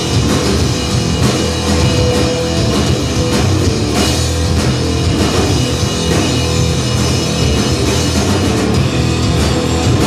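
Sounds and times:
drum kit: 0.0 - 10.0
electric bass: 0.0 - 10.0
electric guitar: 0.0 - 10.0.

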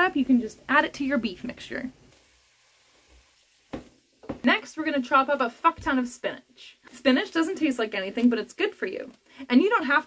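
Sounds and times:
utensil knocking frying pan: 3.7 - 4.5.

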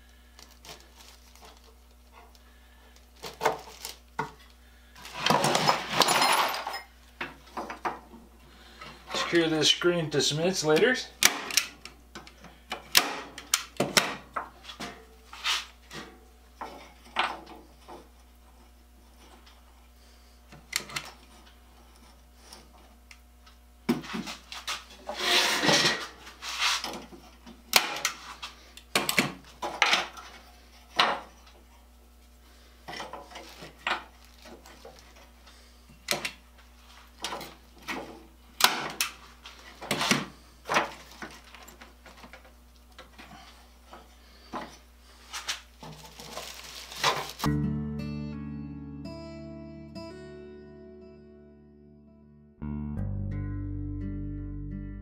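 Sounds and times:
rustling noise: 14.6 - 16.0, 24.0 - 27.0, 45.2 - 47.5.

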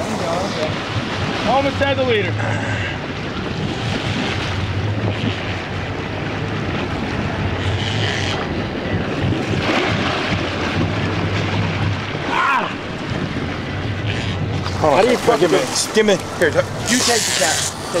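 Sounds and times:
boat engines droning: 0.0 - 18.0
propeller wash churning water: 0.0 - 18.0
wind buffeting microphone: 0.0 - 18.0.

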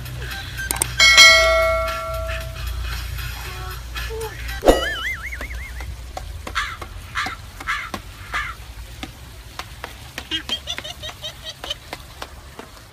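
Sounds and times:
clicks: 0.7 - 1.0
wobbling cartoon twang: 4.6 - 5.2
high squeaky chirps: 4.6 - 5.4.

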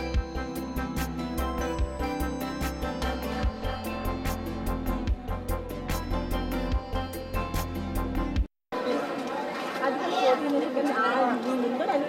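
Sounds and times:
background chatter: 8.7 - 12.0.

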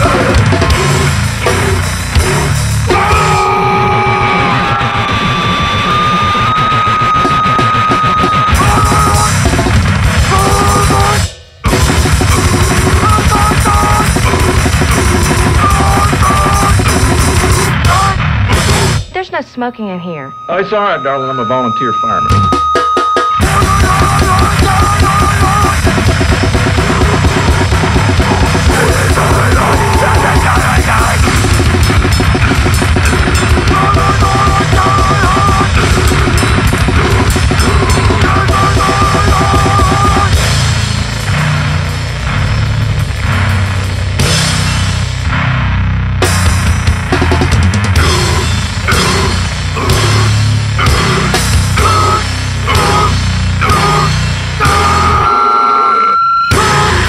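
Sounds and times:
pounding drums and cymbals: 0.0 - 19.4, 20.4 - 55.6, 56.5 - 57.0
guitar: 0.0 - 57.0.

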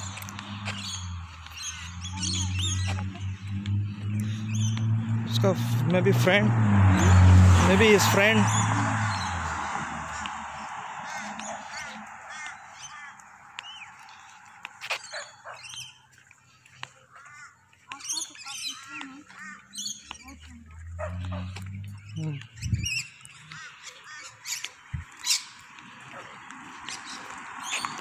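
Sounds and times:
birds chirping: 0.0 - 28.0.

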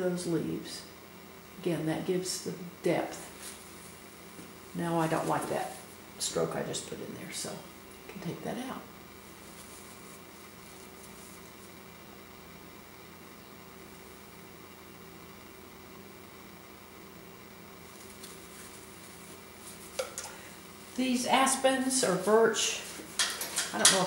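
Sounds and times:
steady low hum: 0.0 - 24.0.

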